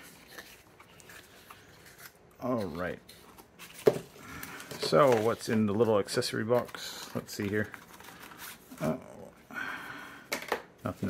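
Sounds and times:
paper packaging rustling: 0.0s - 9.3s.

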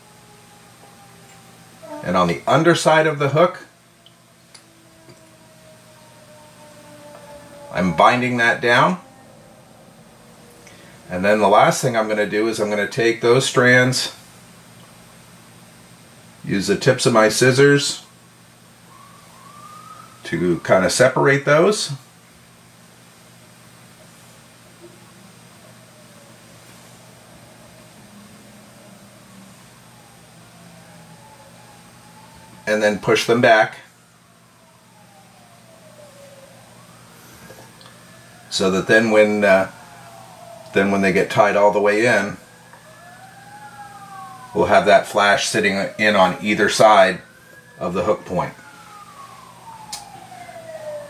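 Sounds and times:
low hum: 0.0s - 16.5s, 22.0s - 33.1s
faint emergency siren: 0.0s - 51.0s.

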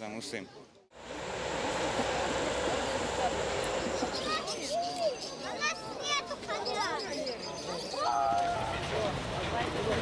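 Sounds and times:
constant low rumble: 1.0s - 4.4s.

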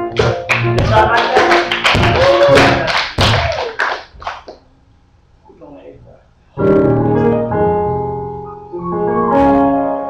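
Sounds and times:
keyboard accompaniment: 0.0s - 2.8s, 6.6s - 10.0s
sharp percussive hits: 0.1s - 3.5s.

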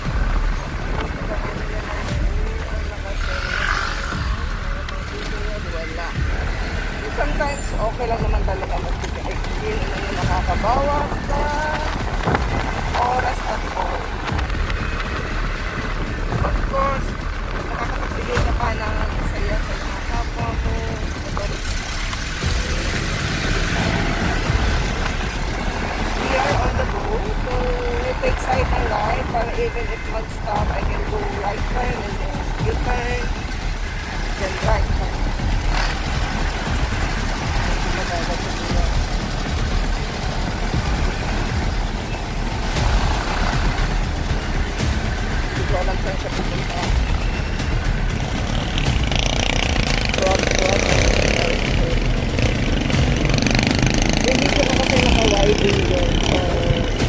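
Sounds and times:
motorcycle engine: 0.0s - 57.0s
surrounding traffic: 0.0s - 57.0s
wind buffeting microphone: 5.6s - 29.7s.

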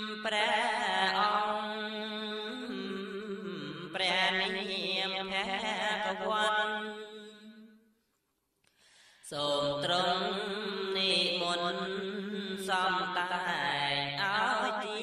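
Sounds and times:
man chanting: 9.3s - 15.0s.

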